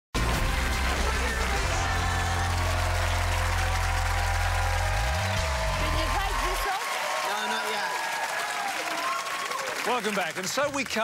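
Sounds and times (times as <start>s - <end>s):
television theme music chord: 0.2s - 3.6s.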